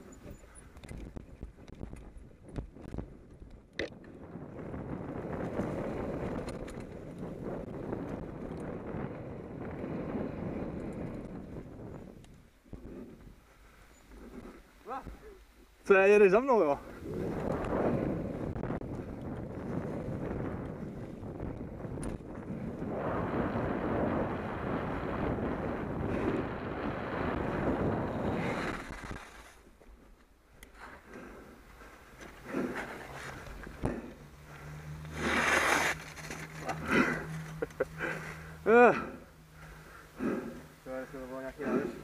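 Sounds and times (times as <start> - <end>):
tyre noise and wind rush: 0.0 - 39.2
loud scrape: 35.0 - 37.5.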